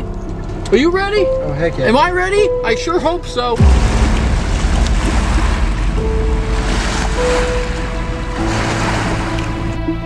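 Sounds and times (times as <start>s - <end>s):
cinematic music with long notes: 1.0s - 10.0s.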